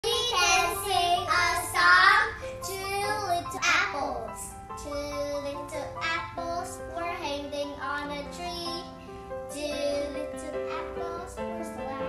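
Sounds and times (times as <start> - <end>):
girls singing: 0.0 - 3.5, 9.5 - 12.0.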